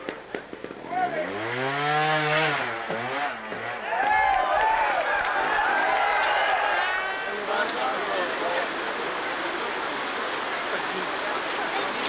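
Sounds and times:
stream water rushing over rocks: 6.2s - 12.0s
faint indistinct voices: 6.7s - 12.0s.

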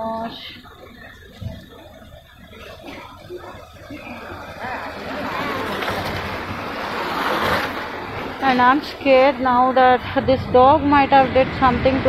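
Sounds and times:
rushing noise: 3.2s - 12.0s.

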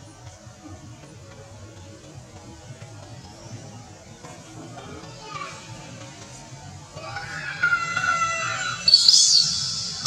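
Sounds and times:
baby monkey crying and screaming: 7.0s - 10.0s.

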